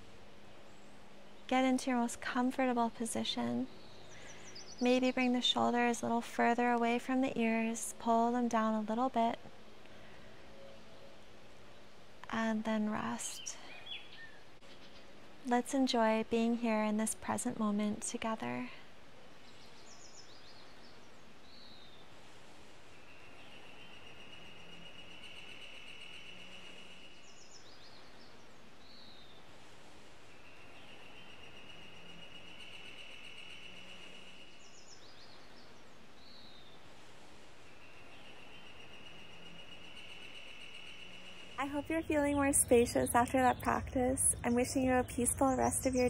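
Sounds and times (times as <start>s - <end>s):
background hiss: 0.0s - 46.0s
songbird chirping and trilling: 0.7s - 9.4s, 10.6s - 18.7s, 23.0s - 29.4s, 30.3s - 36.8s, 37.6s - 46.0s.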